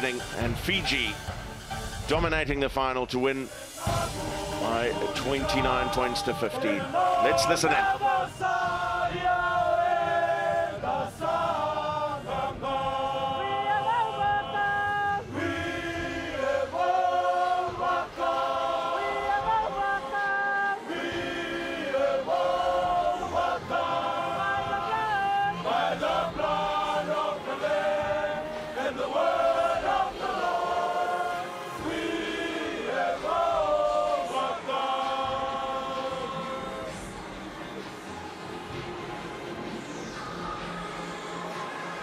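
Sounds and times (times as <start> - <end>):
men singing a hymn in harmony: 3.4 - 37.0.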